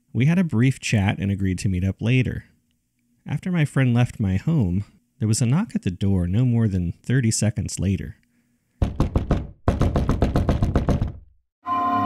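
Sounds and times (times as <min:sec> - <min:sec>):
knocking on a door: 0:08.8 - 0:11.3.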